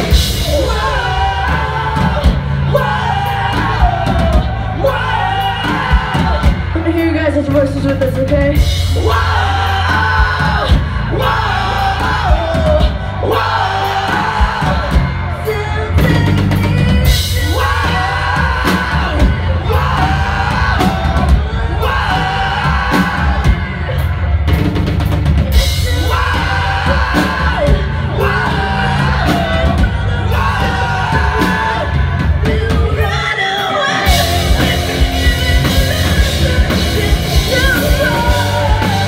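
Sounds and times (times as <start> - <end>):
live rock band playing: 0.0 - 39.0
woman singing: 0.2 - 23.7, 25.6 - 39.0.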